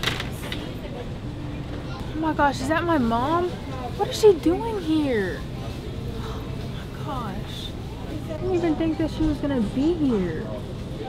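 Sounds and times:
low store hum: 0:00.0 - 0:11.0.

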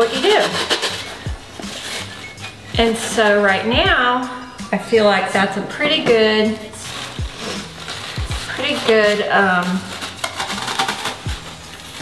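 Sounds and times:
rustling of plant stems: 0:00.6 - 0:03.5, 0:06.2 - 0:12.0.

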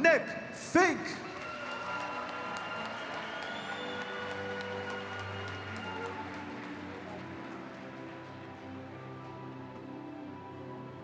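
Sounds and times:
crowd applauding: 0:01.1 - 0:11.0
background music with held chords: 0:02.2 - 0:11.0.

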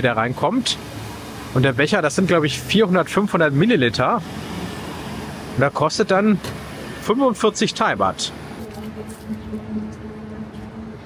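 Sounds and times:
busy market noise: 0:00.0 - 0:11.0.

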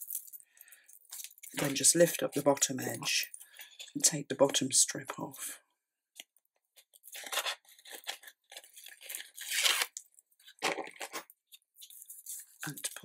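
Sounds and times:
paper rustling: 0:06.8 - 0:13.0
tape backing strip peeling: 0:07.2 - 0:10.0.

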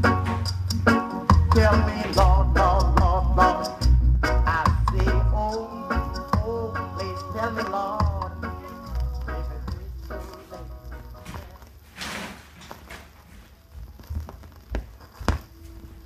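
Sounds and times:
reggae song from vinyl record: 0:00.0 - 0:13.2.

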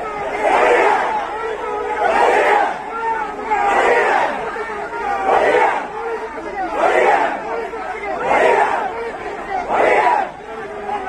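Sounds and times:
crowd chanting in unison: 0:00.0 - 0:11.0.

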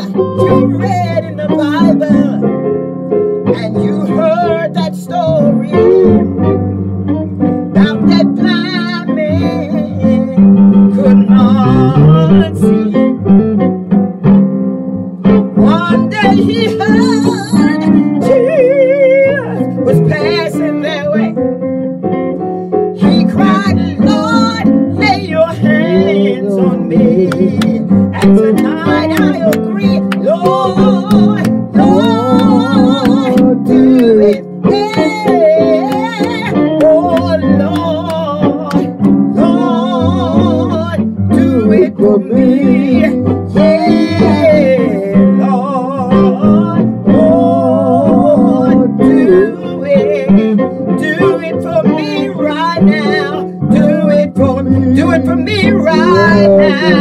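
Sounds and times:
woman singing gospel: 0:00.0 - 0:02.6, 0:03.5 - 0:06.3, 0:07.7 - 0:13.2, 0:15.5 - 0:21.4, 0:23.0 - 0:57.0
guitar accompaniment: 0:00.0 - 0:57.0.

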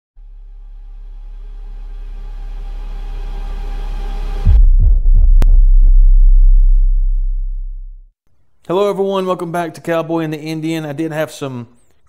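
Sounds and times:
deep bass boom: 0:00.2 - 0:08.1
pitched riser: 0:00.6 - 0:08.0.

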